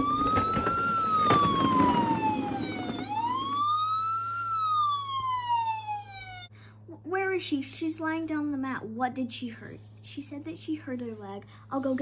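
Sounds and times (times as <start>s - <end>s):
toy wheels rolling over carpet: 0.0s - 4.5s
toy electronic siren wail: 0.0s - 6.5s.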